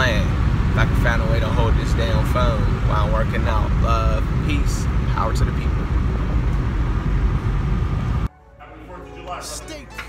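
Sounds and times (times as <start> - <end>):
car cabin rumble: 0.3 - 8.3
faint music: 8.3 - 10.0.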